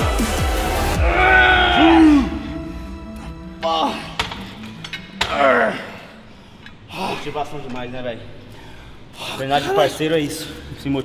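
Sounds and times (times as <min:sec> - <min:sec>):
person grunting: 0:01.0 - 0:02.6.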